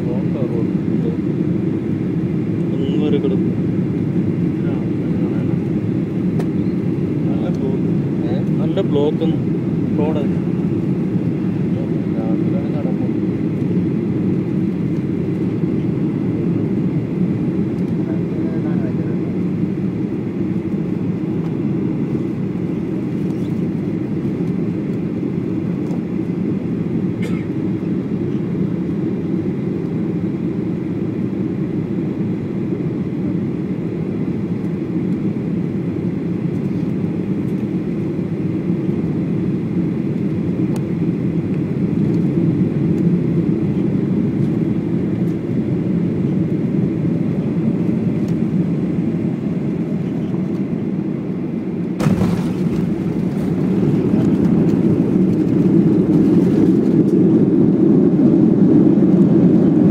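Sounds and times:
airliner cabin rumble: 0:00.0 - 0:59.9.

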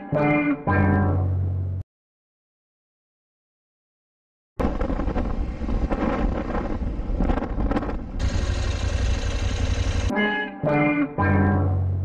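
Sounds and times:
wind rumble on microphone: 0:04.6 - 0:09.2
motorcycle engine: 0:04.6 - 0:10.1
traffic: 0:04.6 - 0:10.1.

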